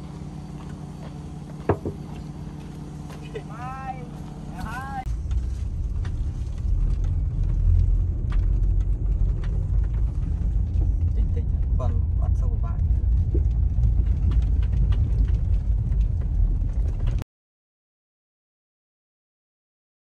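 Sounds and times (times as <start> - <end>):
tyre and engine rumble: 0.0 - 17.2
car knocks and rattles: 0.4 - 3.5, 4.1 - 17.2.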